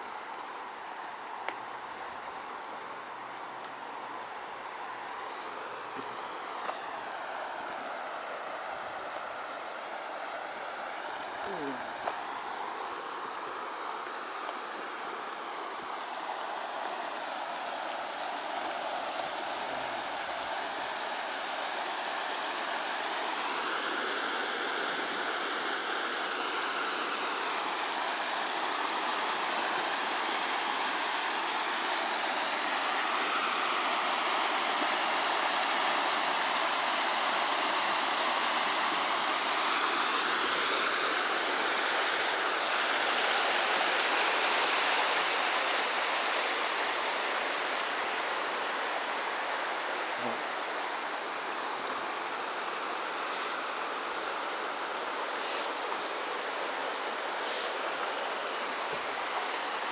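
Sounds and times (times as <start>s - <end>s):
water rushing over a weir: 0.0s - 59.9s.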